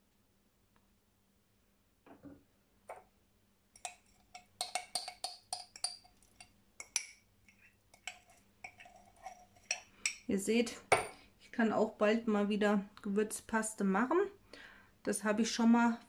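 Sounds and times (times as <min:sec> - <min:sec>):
teaspoon scraping glass jar: 0:03.8 - 0:10.2.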